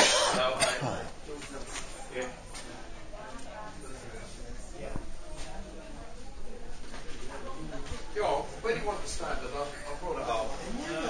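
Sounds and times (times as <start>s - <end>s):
person coughing: 0.0s - 1.1s
low chatter of a room: 0.0s - 11.0s.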